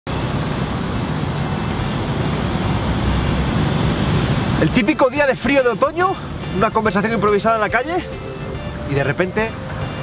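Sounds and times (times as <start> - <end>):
street traffic rumble: 0.1 - 10.0.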